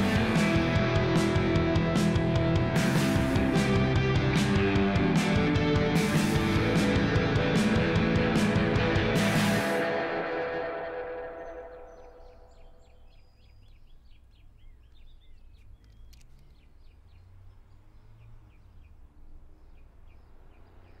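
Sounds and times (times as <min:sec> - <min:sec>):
music chord ringing out: 0:00.0 - 0:13.0
small birds chirping: 0:11.1 - 0:21.0.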